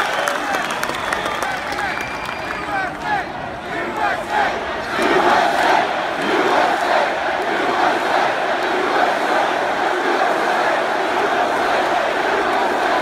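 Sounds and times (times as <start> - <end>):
arena crowd cheering and shouting: 0.0 - 13.0.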